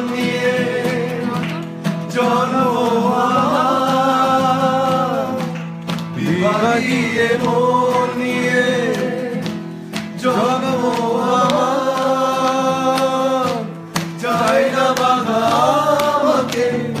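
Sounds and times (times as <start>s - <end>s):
music with singing: 0.0s - 17.0s.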